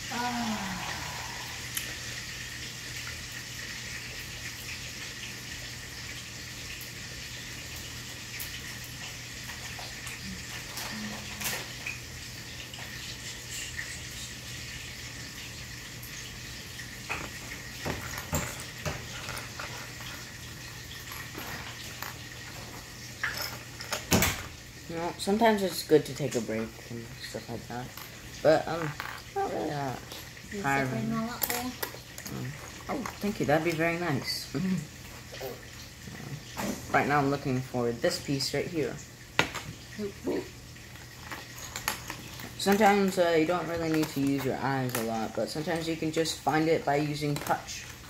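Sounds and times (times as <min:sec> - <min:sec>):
running water hiss: 0:00.0 - 0:48.0.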